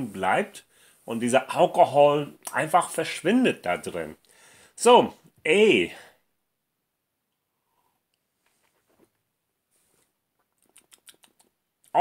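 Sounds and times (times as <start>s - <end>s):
man speaking: 0.0s - 4.2s, 4.8s - 6.1s
mouth clicks and lip smacks: 10.3s - 12.0s.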